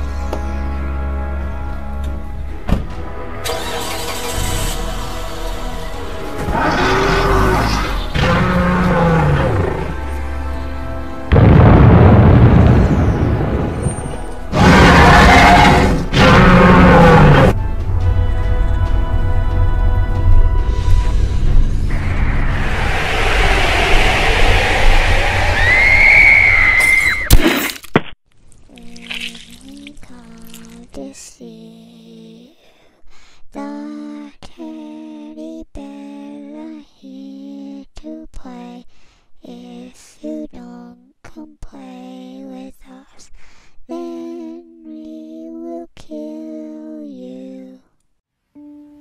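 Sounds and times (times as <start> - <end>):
background music: 0.0 - 23.0
car engine cranking and starting: 3.4 - 6.4
crash: 11.3 - 14.4, 20.9 - 28.0
rumbling hissing drone: 21.1 - 26.8
high shrill screech: 21.9 - 27.4.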